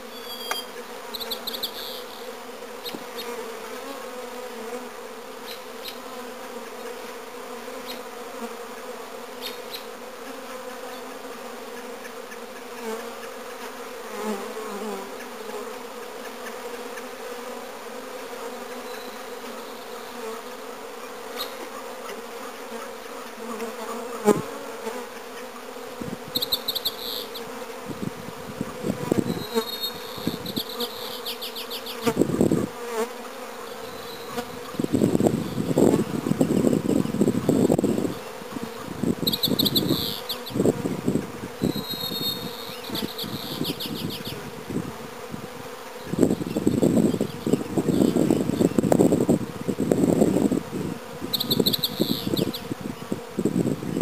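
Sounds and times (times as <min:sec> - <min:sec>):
bees buzzing: 0:00.0 - 0:54.0.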